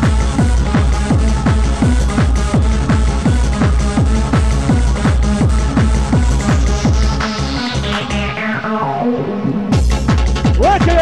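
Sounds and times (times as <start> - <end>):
electronic dance music: 0.0 - 11.0
four-on-the-floor kick drum: 9.8 - 11.0.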